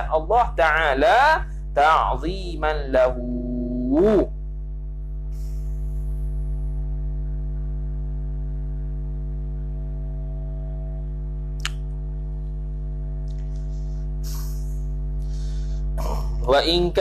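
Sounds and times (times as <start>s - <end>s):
electrical mains hum: 0.0s - 17.0s
sharp click: 11.6s - 11.9s.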